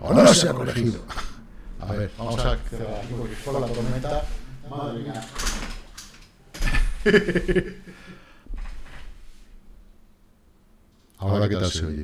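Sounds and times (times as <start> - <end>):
man laughing: 6.6 - 8.2.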